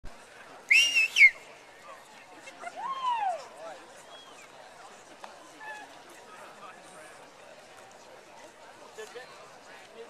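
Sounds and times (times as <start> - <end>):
loud human whistle: 0.7 - 1.4.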